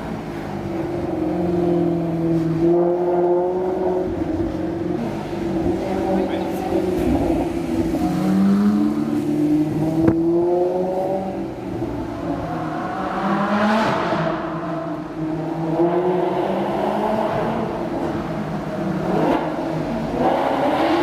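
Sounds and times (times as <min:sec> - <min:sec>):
car engine accelerating: 0:00.0 - 0:21.0.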